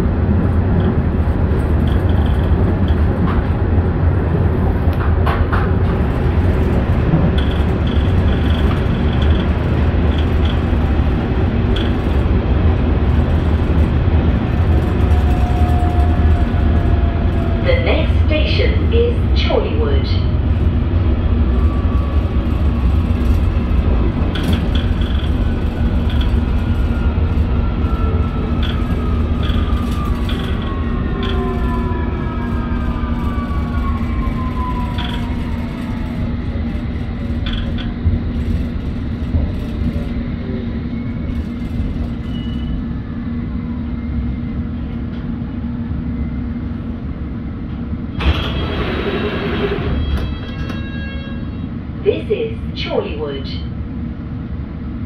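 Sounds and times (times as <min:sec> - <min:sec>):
train wheels rumbling on track: 0:00.0 - 0:55.0.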